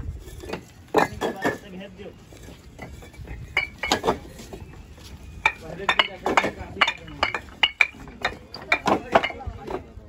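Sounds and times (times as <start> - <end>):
bricks clinking against each other: 0.1 - 10.0.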